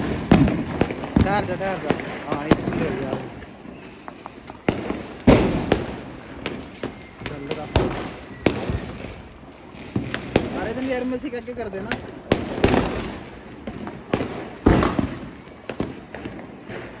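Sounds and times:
firecrackers banging: 0.0s - 17.0s.

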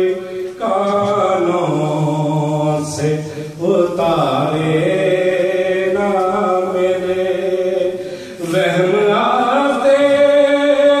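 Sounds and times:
man chanting over loudspeaker: 0.0s - 11.0s.

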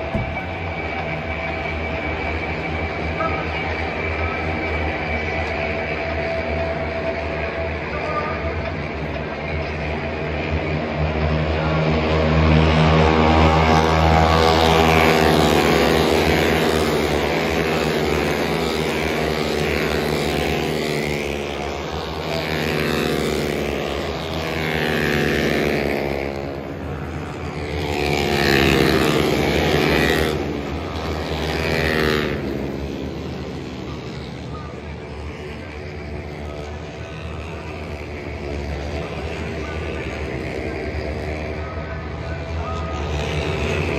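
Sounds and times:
racing motorcycles passing: 0.0s - 43.9s.

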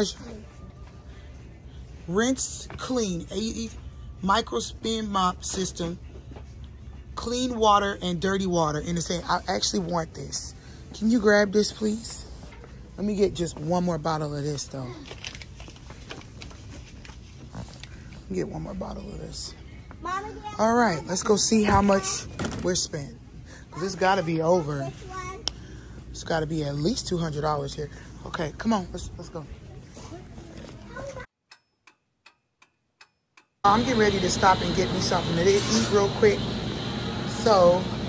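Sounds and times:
shop floor voices: 0.0s - 31.3s, 33.6s - 38.0s
faint store background noise: 0.0s - 31.8s, 32.4s - 38.0s.

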